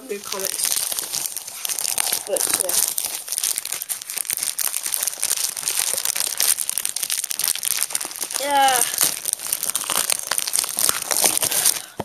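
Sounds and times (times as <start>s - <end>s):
plastic wrapping crinkling: 0.0s - 12.0s.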